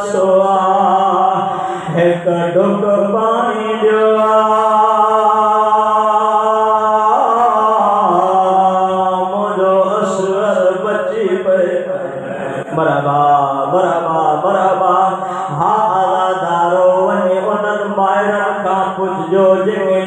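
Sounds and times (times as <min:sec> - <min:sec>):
man chanting through a microphone: 0:00.0 - 0:20.0.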